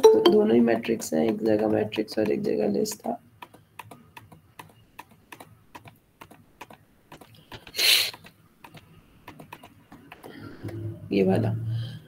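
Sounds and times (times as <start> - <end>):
keyboard keys clicking: 0.0 - 10.8.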